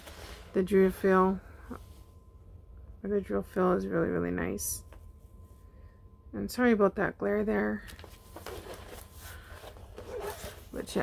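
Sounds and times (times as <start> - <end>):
paper sheets rustling and crinkling: 7.9 - 11.0.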